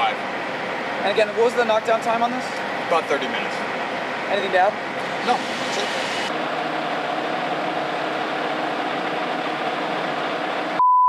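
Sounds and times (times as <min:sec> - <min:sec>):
engine idling: 0:00.0 - 0:10.8.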